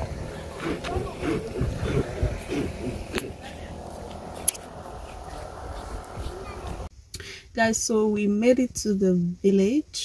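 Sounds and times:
faint distant voices: 0.0 - 6.9
steady low rumble: 0.0 - 7.0.

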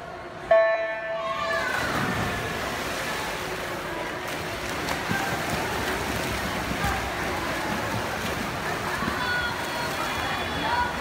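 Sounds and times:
swimmers splashing: 0.5 - 11.0
spectators shouting and cheering: 0.8 - 3.4.

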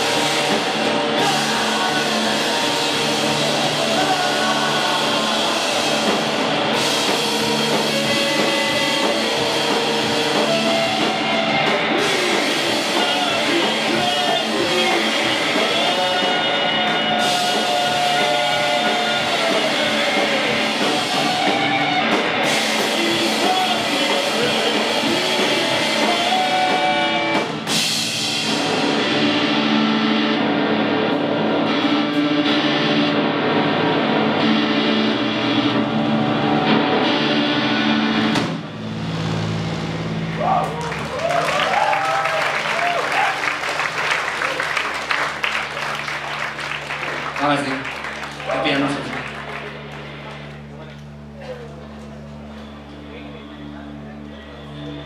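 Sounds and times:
live rock band playing: 0.0 - 55.0
sustained guitar and bass notes: 0.0 - 55.0.

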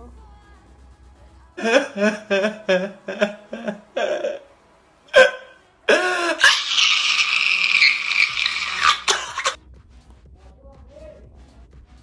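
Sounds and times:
man crying and sobbing: 1.6 - 4.5, 5.1 - 9.6.

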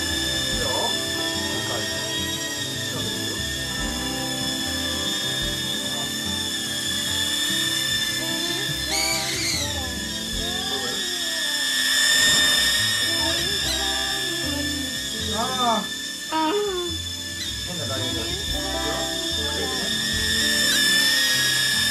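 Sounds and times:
background music: 0.0 - 11.2, 12.0 - 21.9
toy drone motors whining: 0.0 - 21.9.

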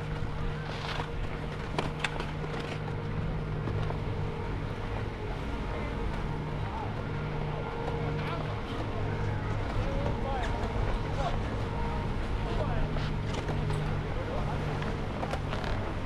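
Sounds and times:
chairlift mechanical hum: 0.0 - 16.0.

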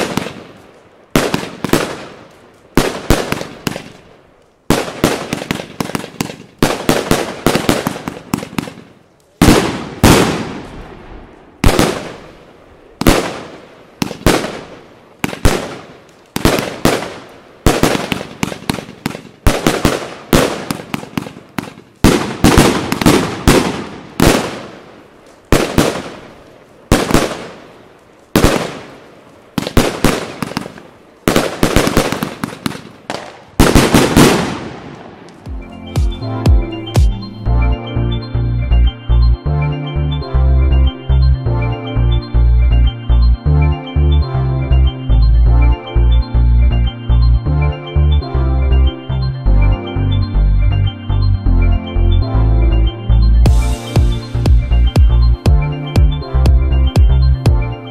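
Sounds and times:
fireworks bangs: 0.0 - 37.3
fireworks crackling: 0.0 - 37.9, 53.4 - 57.9.

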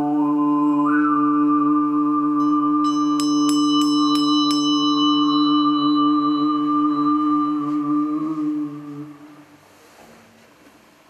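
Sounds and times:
brass hand bell ringing: 2.8 - 6.6.

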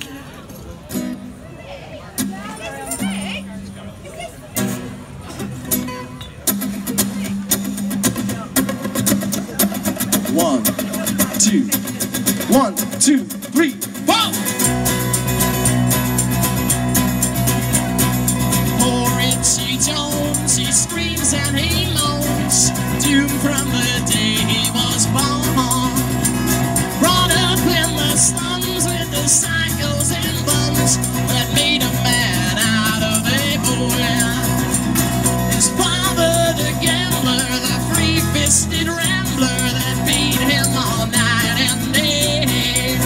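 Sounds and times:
live band through speakers: 0.0 - 43.0
electric guitars strumming: 4.6 - 43.0
person singing: 18.5 - 43.0.

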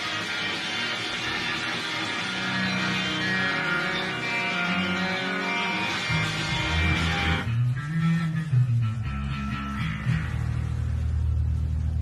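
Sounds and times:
rock band bass-heavy chord: 0.0 - 11.9.

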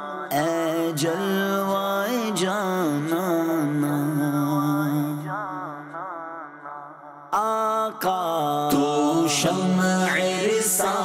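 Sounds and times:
man singing unaccompanied: 0.0 - 6.4, 7.4 - 11.0.

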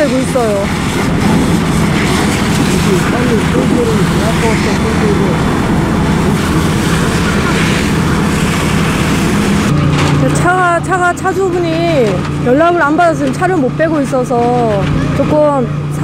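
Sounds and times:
people talking: 0.0 - 0.8, 2.0 - 5.6, 10.2 - 16.0
hoses spraying water: 0.0 - 9.7
fire engine pump running: 0.0 - 16.0.

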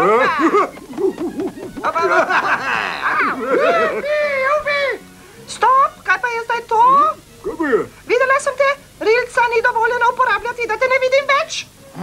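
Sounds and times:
cartoon voices crying out: 2.3 - 4.4.

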